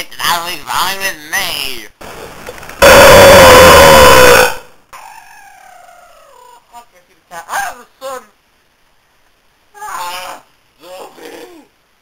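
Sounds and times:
person screaming: 0:02.8 - 0:04.6
wail falling in pitch: 0:02.8 - 0:04.7.

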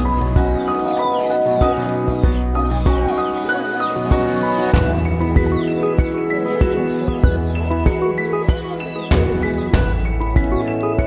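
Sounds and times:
low thumping beats: 0:04.1 - 0:10.8.

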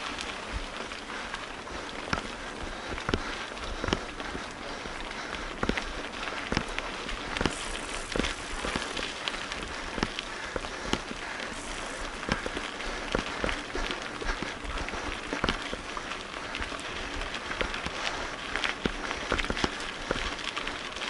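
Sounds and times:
bike tyres crunching on gravel: 0:00.0 - 0:21.0
bike knocks and rattles: 0:05.5 - 0:11.2, 0:12.1 - 0:15.9.

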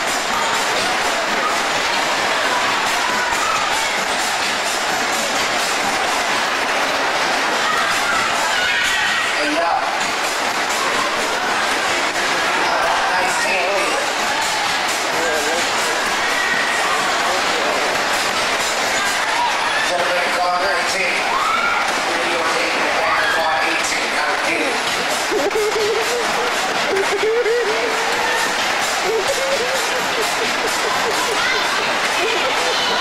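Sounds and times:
ride wheels rumbling and clattering: 0:00.0 - 0:33.0.

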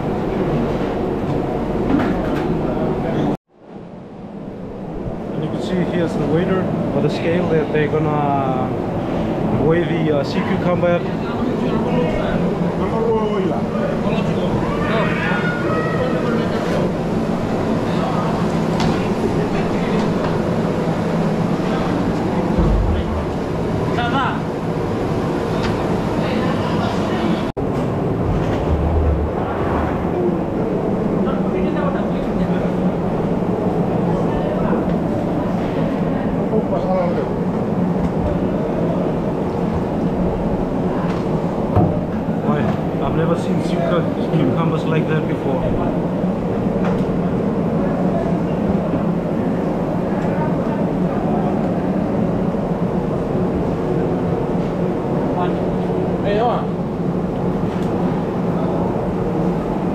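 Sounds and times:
low mechanical hum: 0:00.0 - 0:59.9
crowd talking: 0:05.2 - 0:59.9.

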